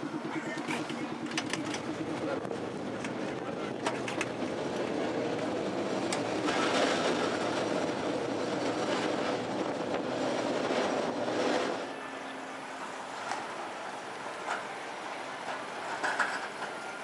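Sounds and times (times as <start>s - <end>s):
streetcar wheels rumbling and rattling: 0.0s - 17.0s.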